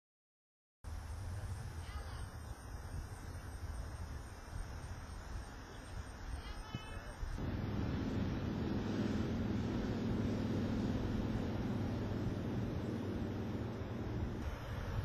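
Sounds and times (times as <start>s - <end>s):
wind noise on microphone: 0.9s - 15.0s
distant motor droning: 7.4s - 15.0s.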